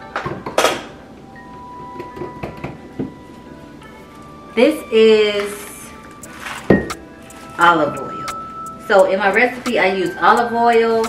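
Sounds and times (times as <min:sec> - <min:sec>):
soft chime-like music: 0:01.0 - 0:11.0
plastic bag crinkling: 0:05.3 - 0:07.8.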